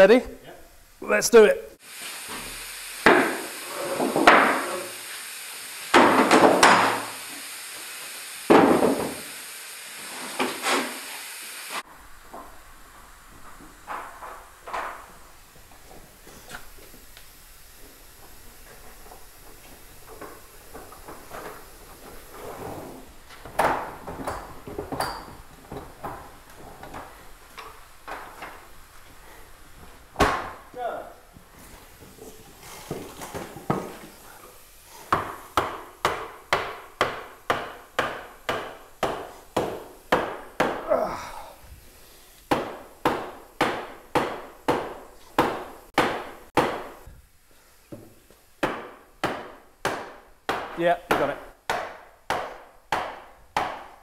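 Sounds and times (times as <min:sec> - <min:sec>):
hammer striking wood: 0:03.0 - 0:04.6, 0:05.9 - 0:07.1, 0:08.5 - 0:09.3, 0:35.1 - 0:40.9, 0:42.5 - 0:47.0, 0:48.6 - 0:54.0.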